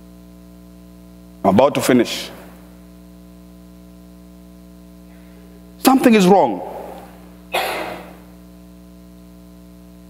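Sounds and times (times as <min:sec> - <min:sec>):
mains hum: 0:00.0 - 0:10.0
man coughing: 0:06.6 - 0:08.3.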